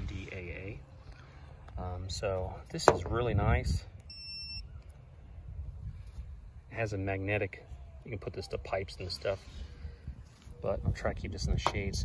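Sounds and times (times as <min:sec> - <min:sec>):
short electronic beep: 0:04.1 - 0:04.6.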